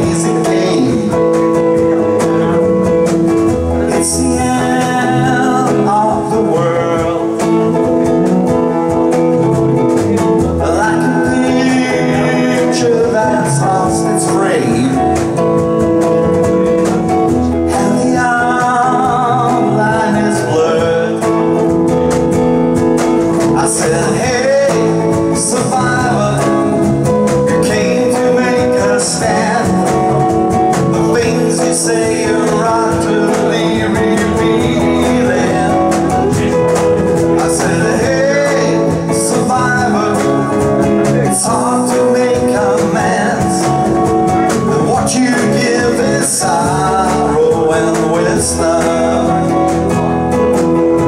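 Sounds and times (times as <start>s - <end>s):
cajon: 0.0s - 51.0s
electric bass: 0.0s - 51.0s
guitar: 0.0s - 51.0s.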